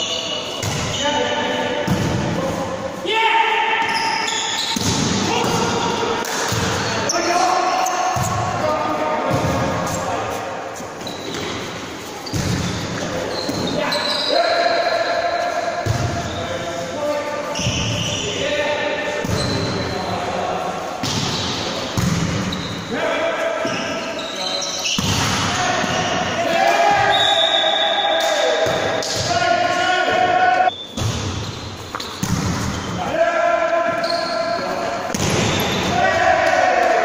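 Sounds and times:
players shouting: 0:25.2 - 0:30.7, 0:35.2 - 0:37.0.

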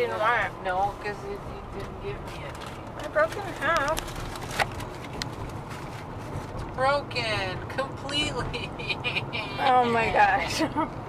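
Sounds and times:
car cabin road rumble: 0:00.0 - 0:11.0.

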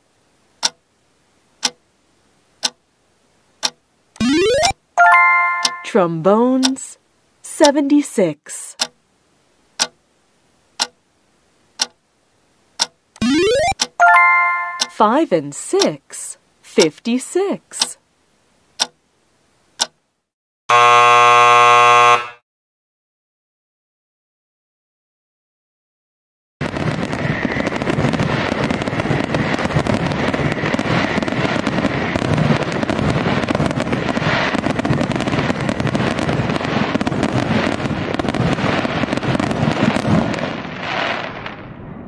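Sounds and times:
timer ticking: 0:00.6 - 0:00.8, 0:01.6 - 0:01.8, 0:03.6 - 0:06.0, 0:06.6 - 0:06.8, 0:08.7 - 0:09.0, 0:09.8 - 0:10.0, 0:10.8 - 0:11.0, 0:11.8 - 0:12.0, 0:12.8 - 0:15.1, 0:15.8 - 0:16.0, 0:16.8 - 0:17.1, 0:17.8 - 0:18.0
rising electronic sweep: 0:04.2 - 0:04.7, 0:13.2 - 0:13.8
loud electronic buzzer: 0:13.2 - 0:13.7, 0:20.7 - 0:22.4.

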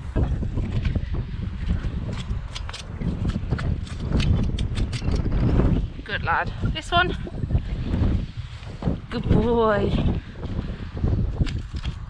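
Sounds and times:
heavy low rumble: 0:00.0 - 0:12.0.

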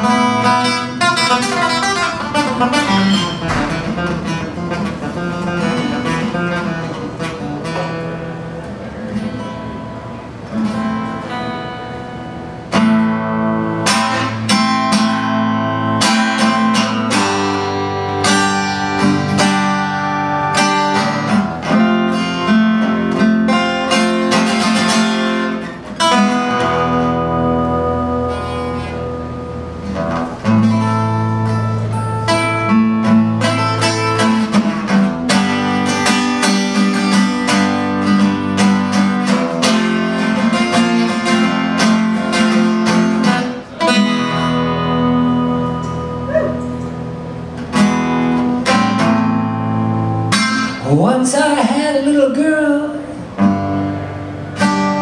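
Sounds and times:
acoustic guitar picked and strummed: 0:00.0 - 0:55.0.

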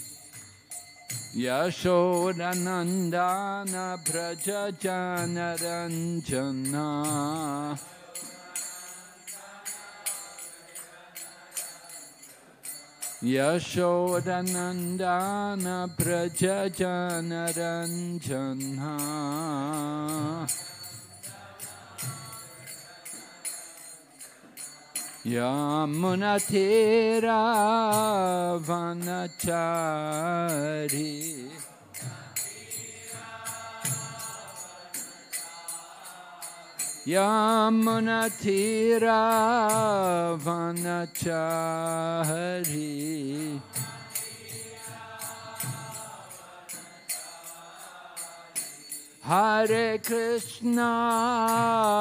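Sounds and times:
faint group singing: 0:00.0 - 0:52.0
metal hand percussion jingling: 0:00.0 - 0:52.0.

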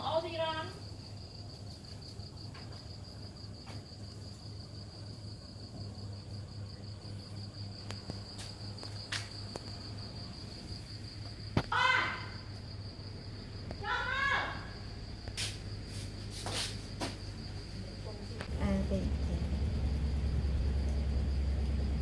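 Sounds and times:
crickets chirping: 0:00.0 - 0:22.0
faint low hum: 0:00.0 - 0:22.0.

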